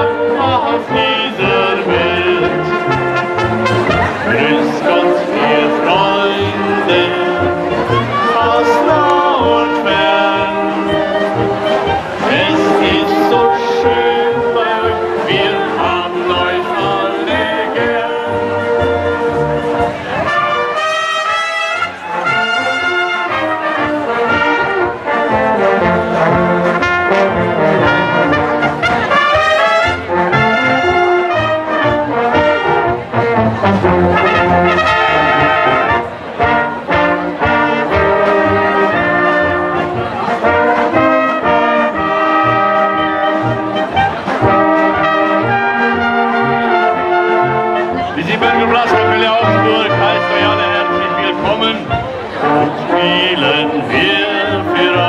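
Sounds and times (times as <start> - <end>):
brass band playing: 0.0 - 55.0.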